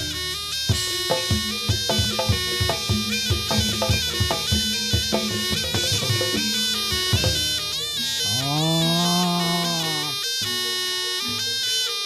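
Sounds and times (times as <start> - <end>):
shawm playing nasal melody: 0.0 - 12.0.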